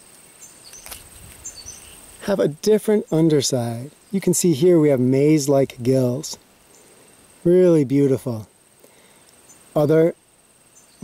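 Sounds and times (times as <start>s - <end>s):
rustle of handling: 0.0s - 2.4s
high insect trill: 0.0s - 11.0s
bird chirps: 0.3s - 2.1s, 10.7s - 11.0s.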